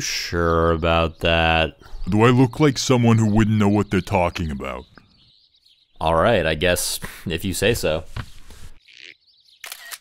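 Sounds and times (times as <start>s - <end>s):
phone camera shutter click: 9.6s - 10.0s.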